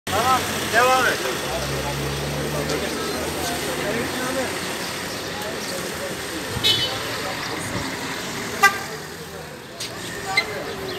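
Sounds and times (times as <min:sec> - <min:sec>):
street traffic: 0:00.0 - 0:10.9
vehicle horn toot: 0:06.6 - 0:07.1, 0:08.6 - 0:09.0.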